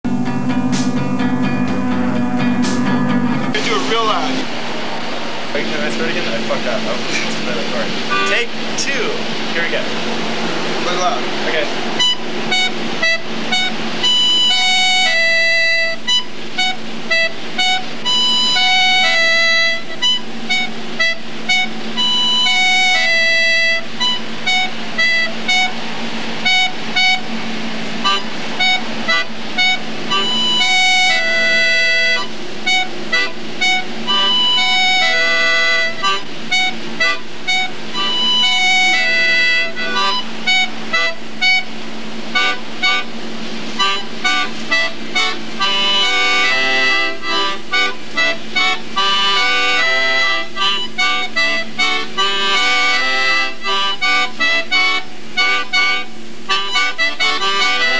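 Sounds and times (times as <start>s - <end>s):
accordion droning chord: 0.0s - 57.9s
man speaking: 3.5s - 4.5s, 5.5s - 10.0s, 10.8s - 11.8s.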